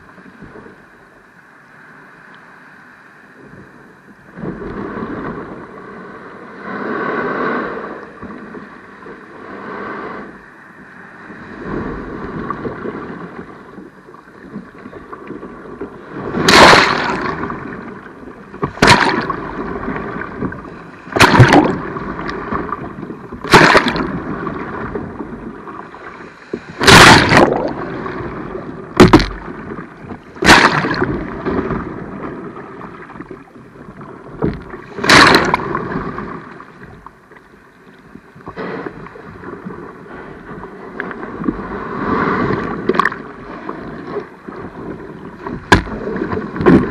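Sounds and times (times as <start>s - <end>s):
wind on microphone: 3.3s - 37.2s, 38.0s - 46.9s
sea water sloshing and lapping: 6.5s - 46.9s.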